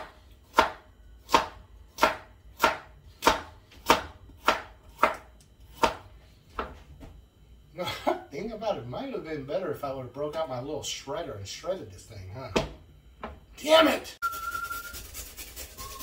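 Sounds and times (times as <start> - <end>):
knife chopping on wooden board: 0.0 - 6.0.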